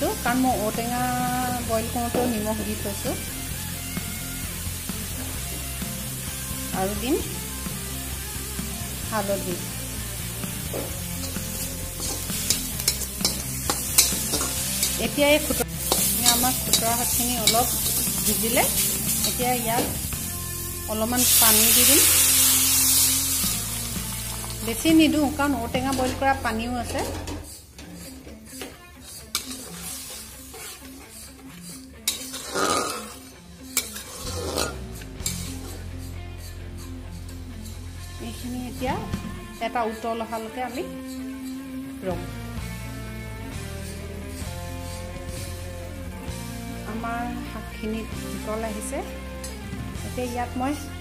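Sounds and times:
greens sizzling: 0:00.0 - 0:27.0, 0:29.0 - 0:39.0, 0:39.6 - 0:51.0
metal spatula scraping a pan: 0:10.5 - 0:23.5, 0:25.1 - 0:38.4, 0:40.2 - 0:41.8, 0:43.5 - 0:45.6.

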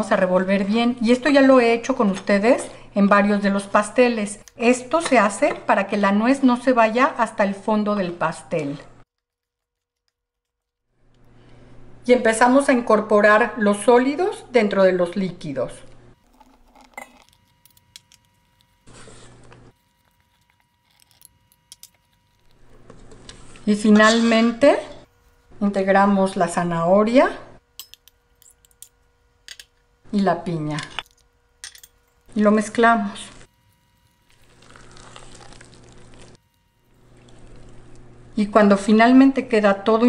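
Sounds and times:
spatula stirring wet batter: 0:33.1 - 0:38.1.

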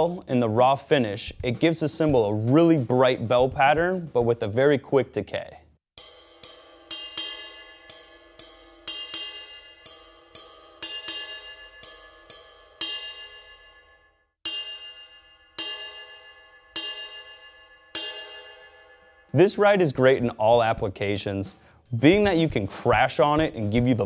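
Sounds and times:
ride cymbal bell pings: 0:06.0 - 0:19.6.

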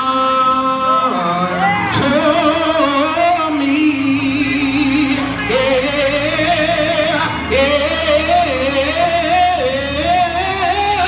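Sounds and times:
man singing gospel: 0:00.0 - 0:11.0.

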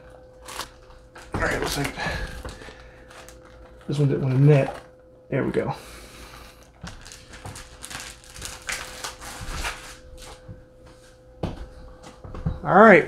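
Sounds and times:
plastic bag crinkling: 0:00.1 - 0:04.9, 0:06.6 - 0:10.4.

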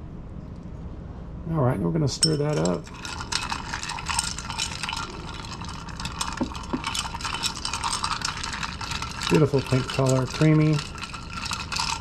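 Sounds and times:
ice clinking in glass: 0:02.2 - 0:12.0.

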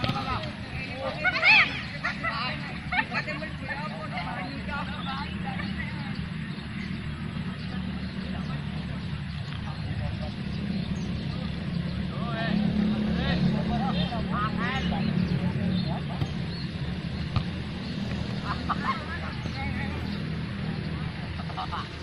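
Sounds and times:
distant footballers shouting: 0:00.0 - 0:22.0.

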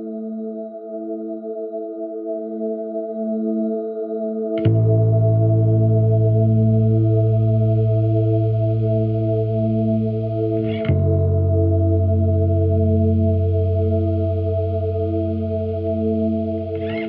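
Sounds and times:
sustained chords background music: 0:00.0 - 0:17.0.

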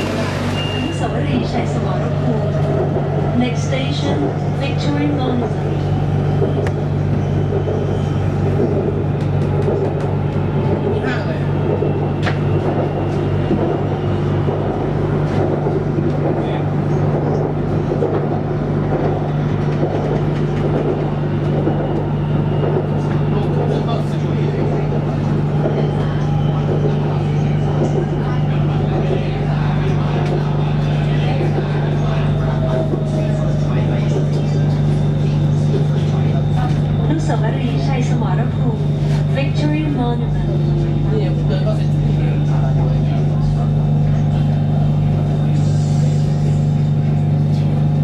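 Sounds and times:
train car low hum: 0:00.0 - 0:48.0
wheel and track rumble: 0:00.0 - 0:48.0.

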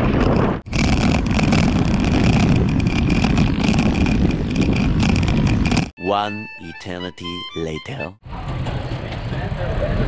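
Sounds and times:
bicycle road noise: 0:00.0 - 0:05.9, 0:08.2 - 0:10.0
wind rumble on microphone: 0:00.0 - 0:05.9, 0:08.2 - 0:10.0.

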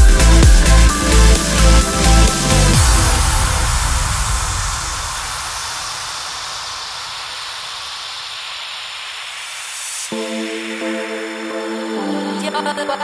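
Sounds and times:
bass: 0:00.0 - 0:05.2
white-noise sweep: 0:00.0 - 0:13.0.

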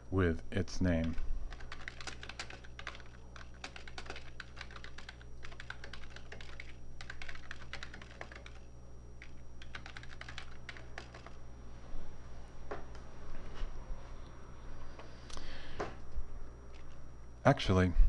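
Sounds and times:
low steady hum: 0:00.0 - 0:18.0
typing on computer keyboard: 0:01.0 - 0:08.6, 0:09.2 - 0:11.4.

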